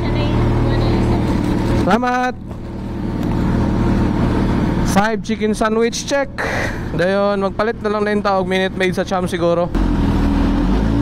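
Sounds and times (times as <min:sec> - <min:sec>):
motorcycle engine idling: 0:00.0 - 0:10.3.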